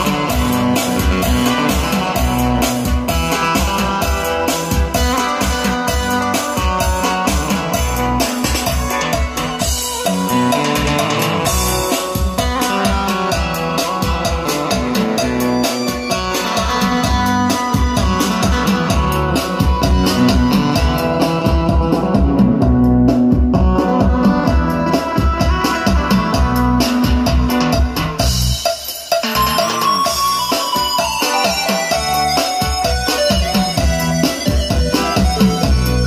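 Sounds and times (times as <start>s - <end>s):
music with drum beat through amplifier: 0.0s - 36.0s.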